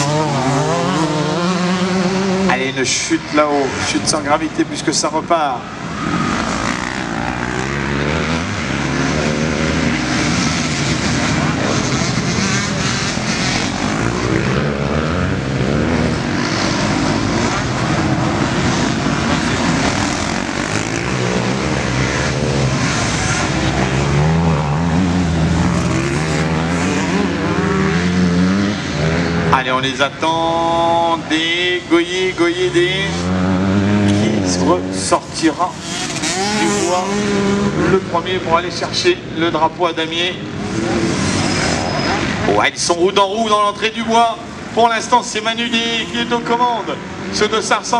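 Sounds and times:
motocross bike engines revving: 0.0 - 47.9.

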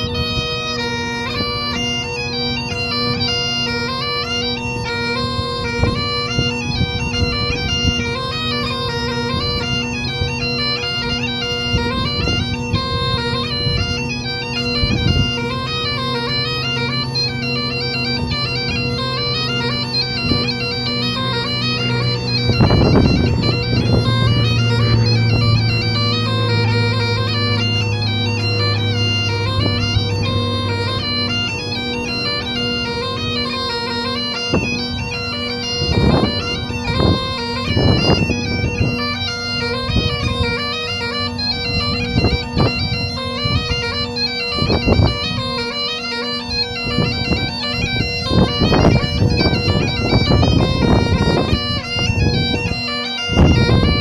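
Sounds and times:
bagpipes playing a tune: 0.0 - 54.0
wind rumble on microphone: 0.0 - 54.0.

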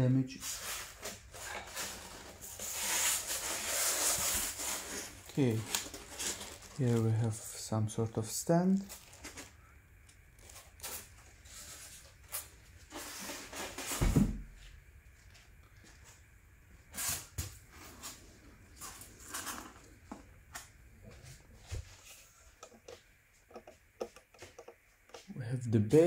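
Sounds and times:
foam packaging rustling: 0.4 - 14.1.

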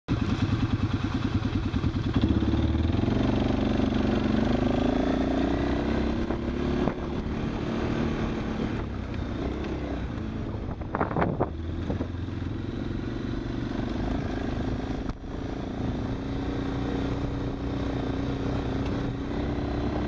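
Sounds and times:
quad engine accelerating: 0.1 - 20.0.

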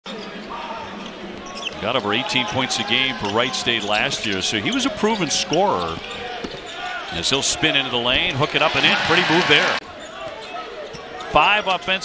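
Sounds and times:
arena background noise: 0.1 - 12.0
man commentating: 1.8 - 5.9, 7.2 - 9.8.

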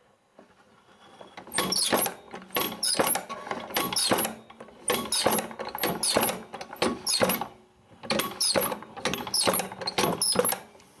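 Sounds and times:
iron mechanism clicking and squeaking: 0.8 - 10.7.

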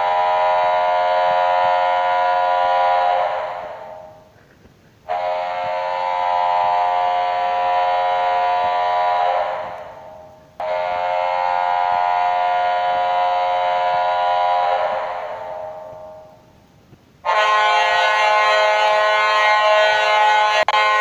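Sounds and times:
arena goal horn blasts: 0.0 - 4.3, 5.1 - 16.5, 17.2 - 21.0.

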